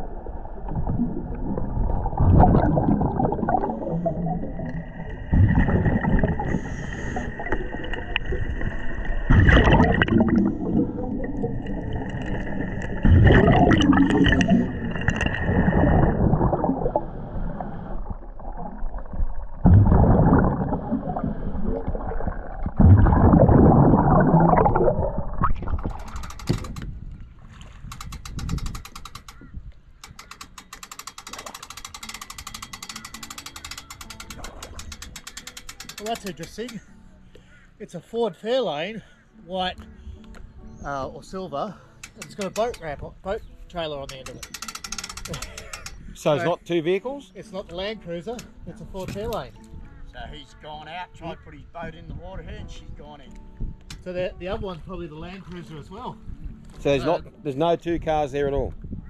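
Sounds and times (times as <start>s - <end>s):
exhaled bubbles rushing: 0.0s - 26.2s
fast even ticking: 30.0s - 36.8s.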